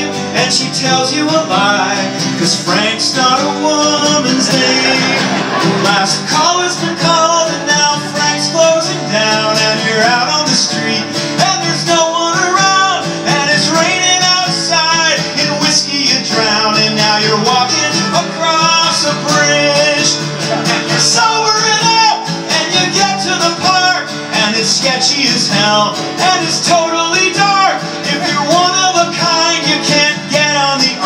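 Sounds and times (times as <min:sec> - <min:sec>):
man singing: 0:00.0 - 0:31.0
strummed acoustic guitars: 0:00.0 - 0:31.0.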